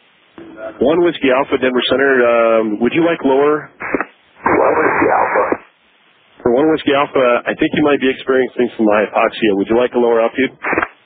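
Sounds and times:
radio static hiss: 0:00.0 - 0:11.0.

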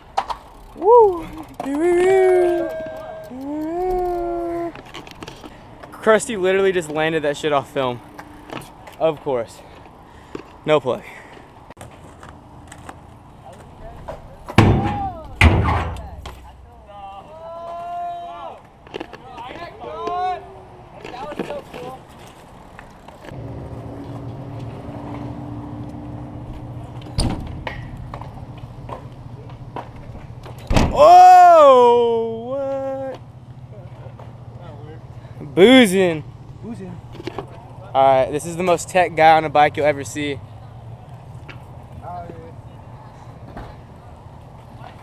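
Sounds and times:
riders whooping: 0:00.6 - 0:04.8, 0:16.9 - 0:18.6, 0:30.9 - 0:33.1
loud drawn-out shout: 0:00.8 - 0:04.7, 0:16.9 - 0:18.6, 0:30.9 - 0:32.8
bmx bike knocks on concrete: 0:14.1 - 0:16.5.

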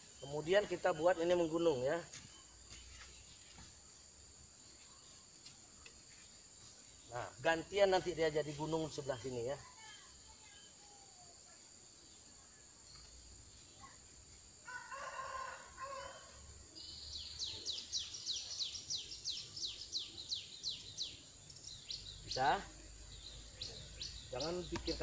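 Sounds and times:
rooster crowing: 0:14.6 - 0:16.5.

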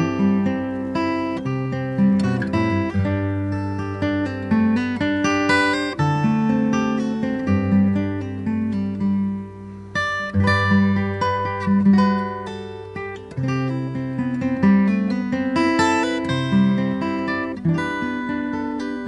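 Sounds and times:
fingerstyle acoustic guitar: 0:00.0 - 0:19.0.

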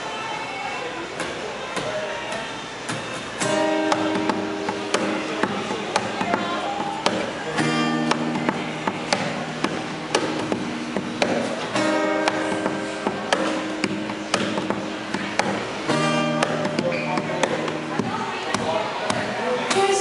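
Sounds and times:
acoustic guitar strumming chords: 0:03.4 - 0:20.0.

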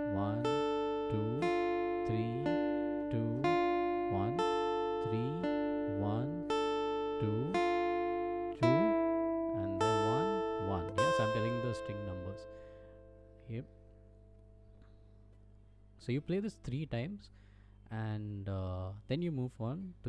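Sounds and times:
acoustic guitar arpeggio: 0:00.0 - 0:14.8.

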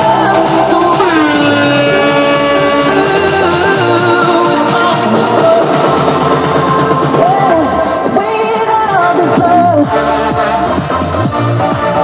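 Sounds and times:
pulsing bass line: 0:00.0 - 0:12.0
sliding synth note: 0:00.5 - 0:07.6.

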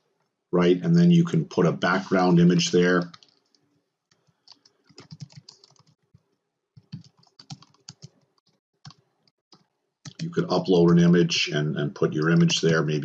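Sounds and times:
computer keyboard typing: 0:04.2 - 0:06.0, 0:06.8 - 0:09.0, 0:10.1 - 0:11.1.

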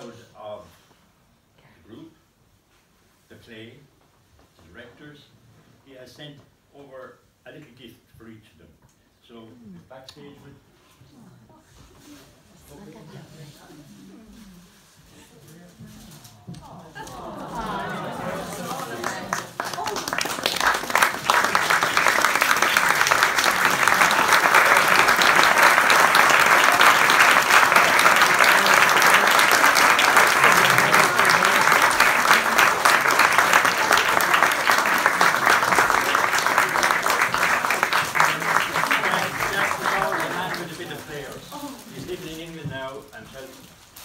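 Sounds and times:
audience applauding: 0:17.0 - 0:41.4.

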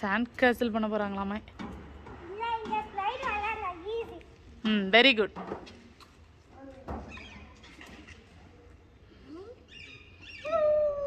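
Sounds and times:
child squealing: 0:10.4 - 0:11.0.

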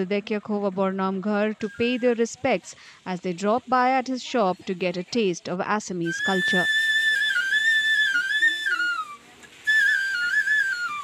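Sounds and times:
bamboo flute melody: 0:01.5 - 0:02.3, 0:06.0 - 0:11.0.

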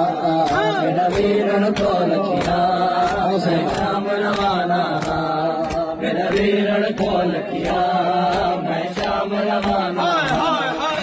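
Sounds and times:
men chanting in unison: 0:00.0 - 0:11.0
rhythmic chest-beating: 0:00.0 - 0:11.0.

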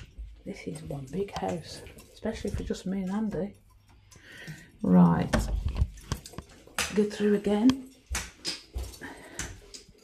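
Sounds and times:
footsteps on tiled floor: 0:05.4 - 0:10.0.

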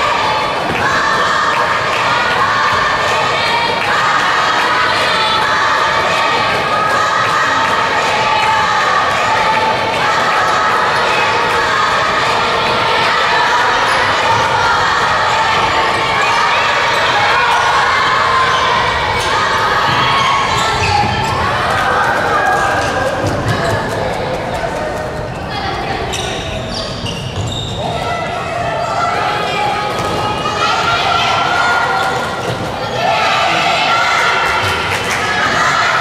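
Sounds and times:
people shouting: 0:00.0 - 0:24.2, 0:27.8 - 0:36.0.

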